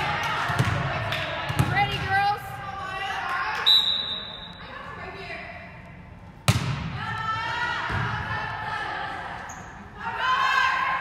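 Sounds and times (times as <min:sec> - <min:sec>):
volleyball smack: 0:06.4 - 0:06.9.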